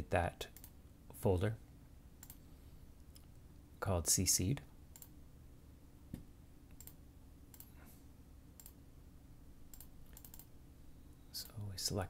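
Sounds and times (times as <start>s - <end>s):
low steady room hum: 0.0s - 12.0s
faint computer mouse clicks: 2.2s - 2.4s, 8.6s - 8.8s, 9.7s - 10.5s.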